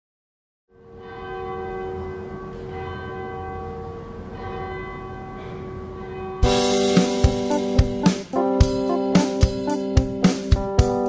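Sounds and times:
church bells ringing: 0:00.7 - 0:09.9.

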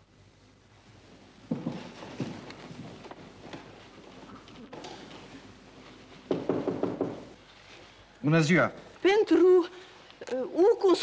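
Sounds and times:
knocking on a door: 0:06.3 - 0:07.3.

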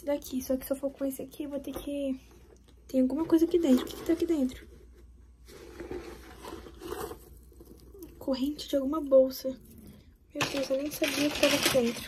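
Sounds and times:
soft rustling and handling: 0:00.3 - 0:08.8.

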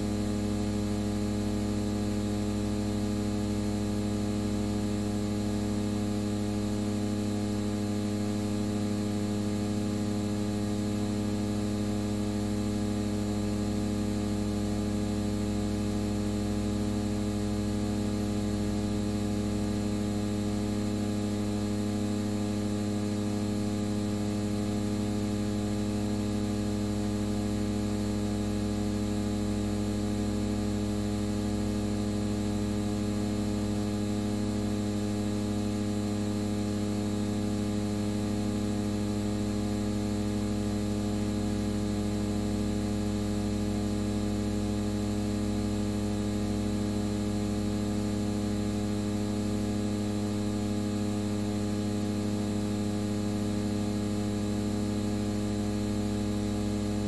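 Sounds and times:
electrical hum: 0:00.0 - 0:57.0.

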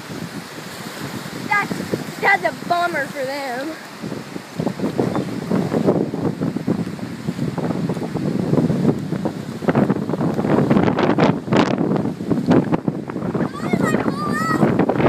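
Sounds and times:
choppy water washing against dock: 0:00.0 - 0:15.0
wind buffeting microphone: 0:00.0 - 0:15.0.

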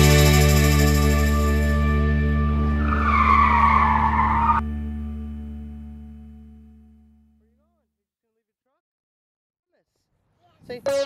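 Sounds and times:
background music chord: 0:00.0 - 0:03.2
tyre skid squeal: 0:02.7 - 0:04.6.

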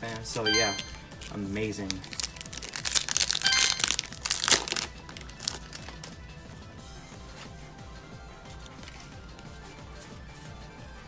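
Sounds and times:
foil wrapper tearing and crinkling: 0:01.2 - 0:06.2.

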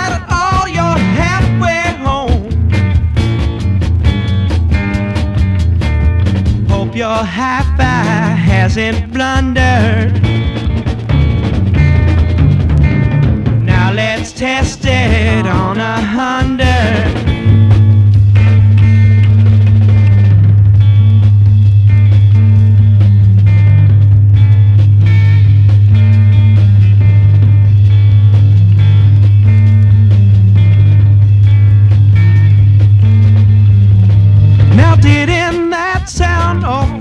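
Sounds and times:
person singing: 0:00.0 - 0:02.7, 0:06.7 - 0:10.2, 0:13.6 - 0:17.3, 0:34.6 - 0:37.0
rock band playing: 0:00.0 - 0:37.0
low test tone: 0:17.1 - 0:35.5.

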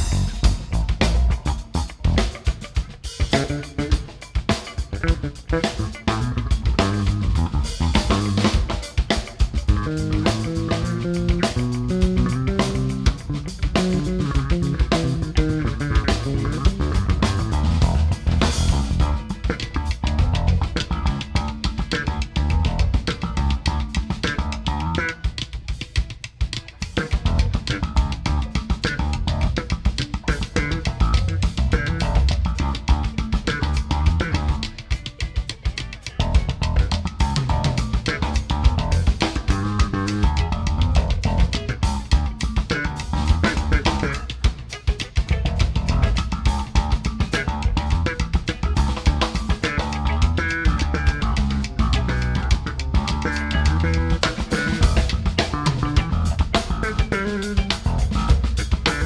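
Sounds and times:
electric bass solo: 0:00.0 - 0:25.6, 0:26.8 - 0:59.0
drum kit playing funk groove: 0:00.0 - 0:59.0.

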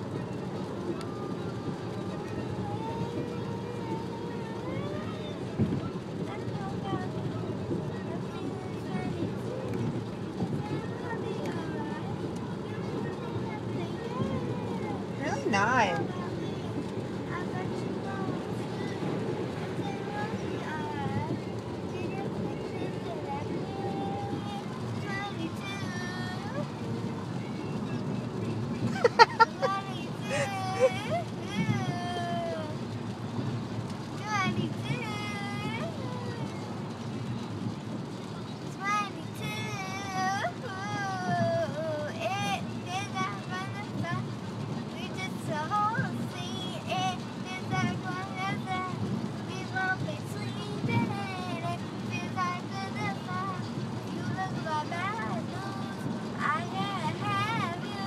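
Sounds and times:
car road noise: 0:00.0 - 0:58.0
girl singing: 0:17.3 - 0:26.6, 0:29.2 - 0:32.8, 0:34.2 - 0:36.6, 0:38.8 - 0:44.2, 0:45.0 - 0:58.0.

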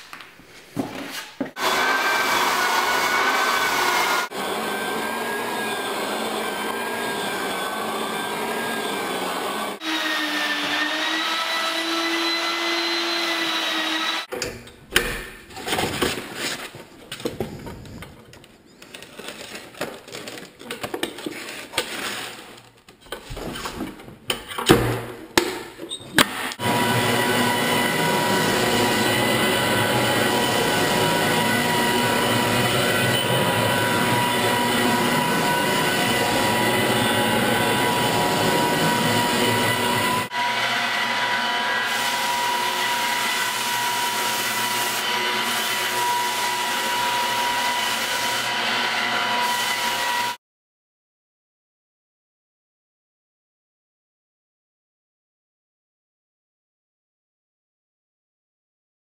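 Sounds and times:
drum floor sander whining: 0:01.6 - 0:14.3, 0:26.3 - 0:50.4.

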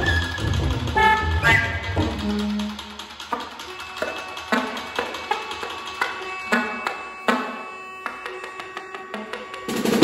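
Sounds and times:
soprano saxophone notes: 0:03.7 - 0:10.0.

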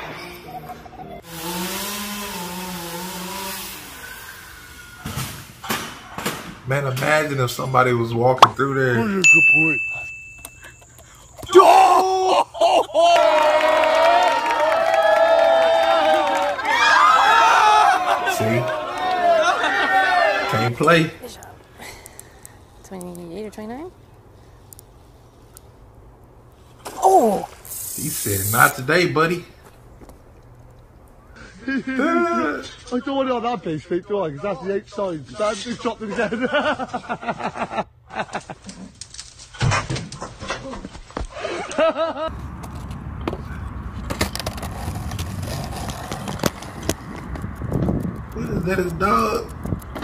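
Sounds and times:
chainsaw cutting wood: 0:01.3 - 0:04.8.

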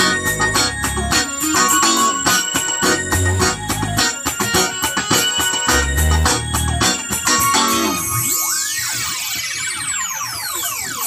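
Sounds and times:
swooping electronic tones: 0:00.0 - 0:11.0.

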